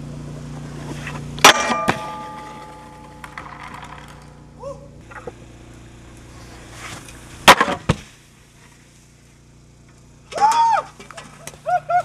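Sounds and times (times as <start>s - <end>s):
board hitting handrail: 0.9s - 4.4s, 6.8s - 8.1s
board hissing over snow: 6.0s - 9.5s.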